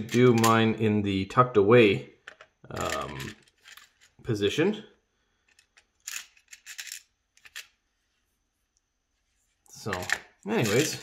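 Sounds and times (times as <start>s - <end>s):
metal parts rattling in plastic box: 2.8s - 4.2s, 5.5s - 7.7s, 9.9s - 11.0s.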